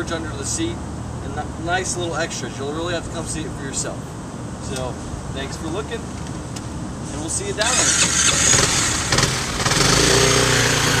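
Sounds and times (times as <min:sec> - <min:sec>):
scooter engine drone: 0:07.6 - 0:11.0.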